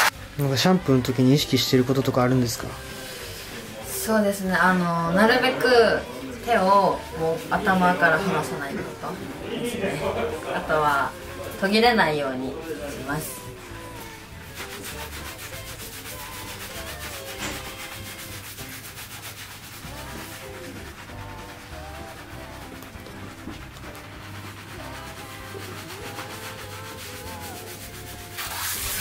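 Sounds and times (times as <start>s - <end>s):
hand shower water spray: 0.0s - 0.4s, 12.9s - 29.0s
fingertips scrubbing soapy hair: 12.5s - 29.0s.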